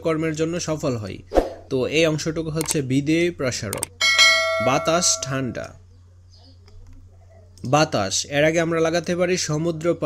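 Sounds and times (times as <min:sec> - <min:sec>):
struck bell chime: 0:04.0 - 0:05.6.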